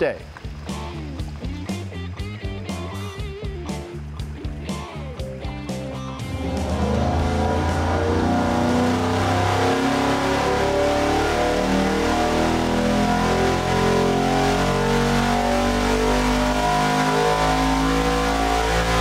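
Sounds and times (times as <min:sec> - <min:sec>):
supercharged engine revving: 0:05.4 - 0:19.0.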